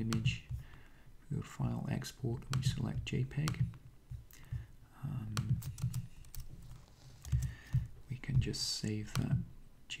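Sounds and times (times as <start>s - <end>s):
computer keyboard typing: 5.3s - 9.3s.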